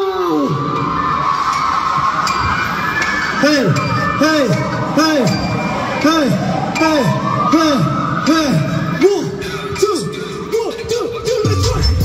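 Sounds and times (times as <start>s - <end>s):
crowd screaming and cheering: 0.0s - 12.0s.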